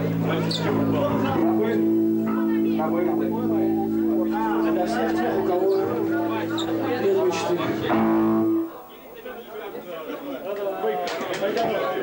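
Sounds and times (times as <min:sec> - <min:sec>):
electric guitar chord ringing: 0:00.0 - 0:08.9
crowd chatter: 0:00.0 - 0:12.0.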